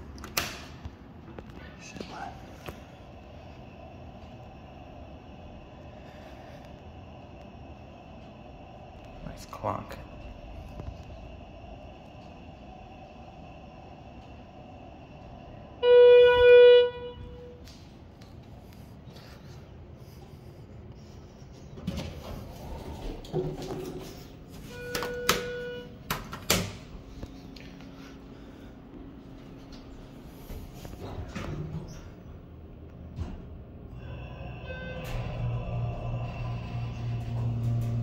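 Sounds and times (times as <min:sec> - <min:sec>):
elevator arrival chime: 0:15.7 - 0:17.6, 0:24.5 - 0:26.1, 0:34.0 - 0:38.0.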